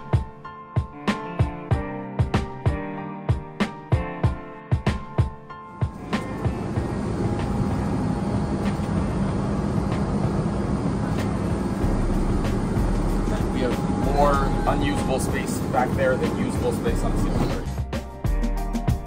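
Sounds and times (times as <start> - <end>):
background music with beat: 0.0 - 7.9, 11.1 - 19.0
aircraft cabin drone: 5.7 - 17.9
low hum: 5.8 - 17.8
voices: 13.2 - 17.7.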